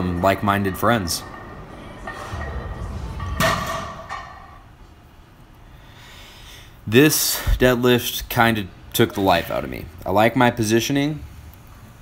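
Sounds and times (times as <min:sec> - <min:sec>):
barbell plates thudding on floor: 0:01.3 - 0:04.6.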